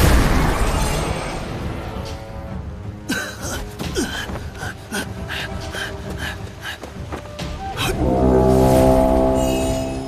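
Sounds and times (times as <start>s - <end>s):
dramatic background music: 0.0s - 10.0s
deep sustained horn blast: 7.9s - 10.0s.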